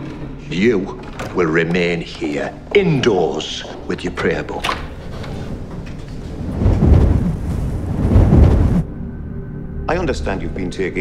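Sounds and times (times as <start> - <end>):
strong wind gusting: 5.5 - 8.9.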